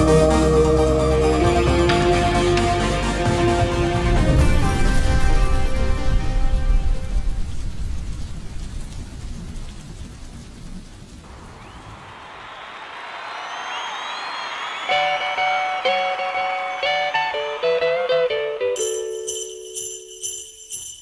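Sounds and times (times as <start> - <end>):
melody of held notes: 15.0 - 20.5.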